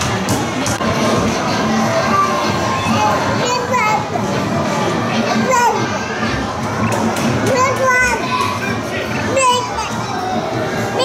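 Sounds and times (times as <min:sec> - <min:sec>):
chatter and bustle of play hall: 0:00.0 - 0:11.0
children calling out and babbling: 0:01.3 - 0:11.0.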